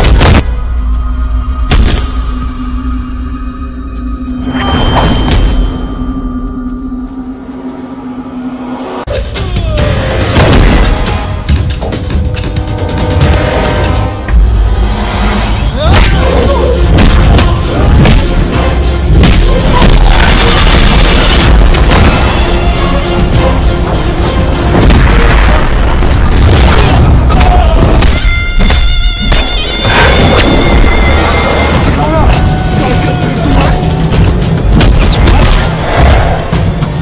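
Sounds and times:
loud action film music: 0:00.0 - 0:37.0
faint higher tone: 0:00.5 - 0:09.0
low drone music note: 0:00.5 - 0:09.1.

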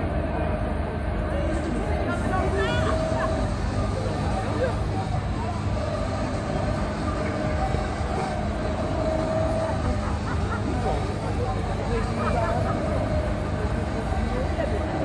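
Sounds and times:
crowd chatter: 0:00.0 - 0:15.0
faint steady hum: 0:00.0 - 0:15.0
low mechanical rumble: 0:00.0 - 0:15.0.

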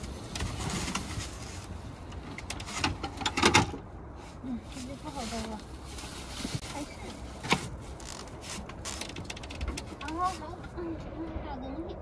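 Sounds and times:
insulation mat rustling: 0:04.2 - 0:10.7.

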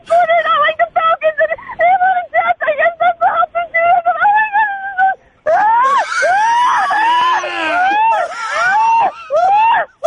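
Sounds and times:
people yelling and wailing: 0:05.0 - 0:10.0.

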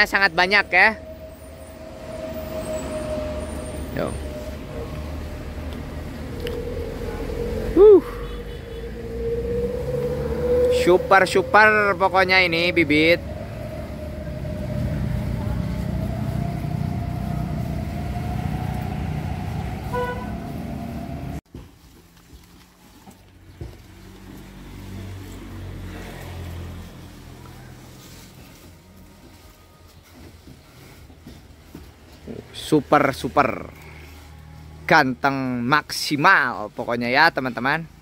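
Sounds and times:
vehicle engine whining: 0:00.0 - 0:21.4
short horn toot: 0:07.8 - 0:09.0, 0:19.8 - 0:20.7.

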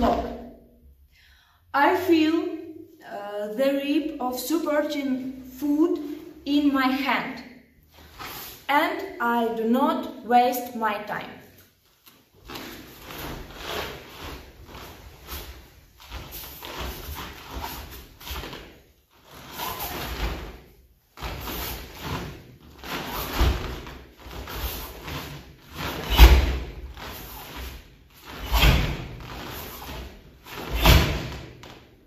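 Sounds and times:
cloth uniforms swishing and snapping: 0:11.7 - 0:31.9.

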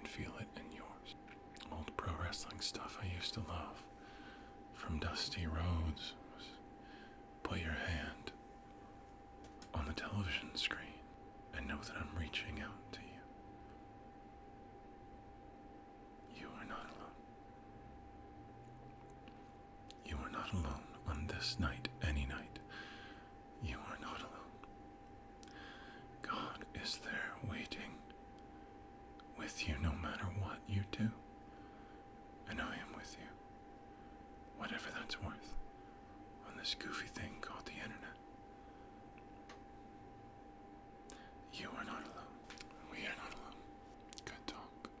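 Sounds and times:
man whispering: 0:00.0 - 0:04.0, 0:04.7 - 0:06.7, 0:07.4 - 0:08.4, 0:09.6 - 0:13.4, 0:16.2 - 0:17.2, 0:19.9 - 0:22.9, 0:23.5 - 0:24.7, 0:25.4 - 0:28.2, 0:29.2 - 0:31.8, 0:32.4 - 0:33.5, 0:34.5 - 0:35.6, 0:36.3 - 0:38.3, 0:41.1 - 0:45.0
faint steady hum: 0:00.0 - 0:45.0
faint steady tone: 0:00.0 - 0:45.0.

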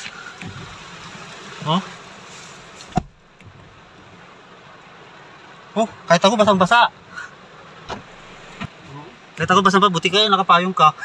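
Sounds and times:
rain hissing on vehicle: 0:00.0 - 0:11.0.

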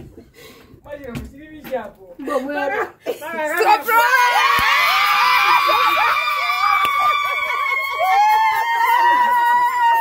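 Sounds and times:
women cheering and shouting: 0:03.5 - 0:10.0.

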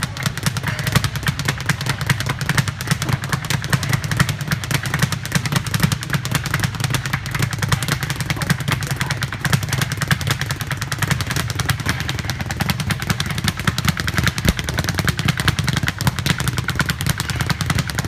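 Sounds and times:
speed bag drumming rattle: 0:00.0 - 0:18.0.

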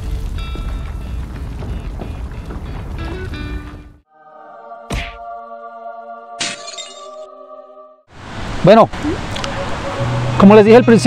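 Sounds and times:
glass shattering: 0:06.4 - 0:07.1.

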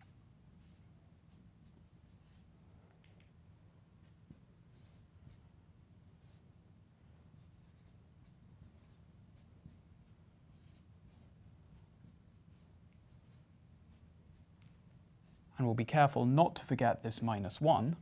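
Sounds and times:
marker writing on whiteboard: 0:00.0 - 0:02.5, 0:04.0 - 0:05.4, 0:06.2 - 0:06.4, 0:07.4 - 0:15.5.

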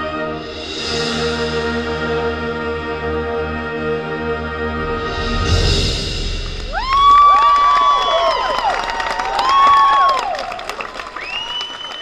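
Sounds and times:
marching band chord: 0:00.0 - 0:07.8
crowd cheering and clapping: 0:06.4 - 0:12.0
high whoops: 0:06.7 - 0:12.0.

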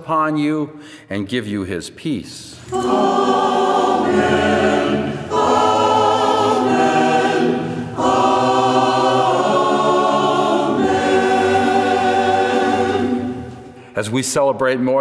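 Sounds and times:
choir singing held chords: 0:02.6 - 0:13.9.

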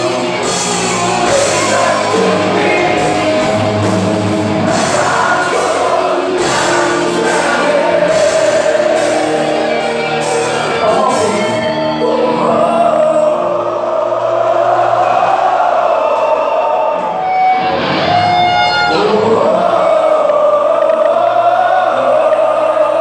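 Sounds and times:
heavy metal band with singing: 0:00.0 - 0:23.0.

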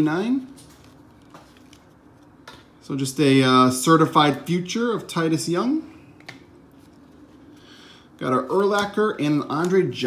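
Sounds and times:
cards rustling: 0:00.1 - 0:02.8.

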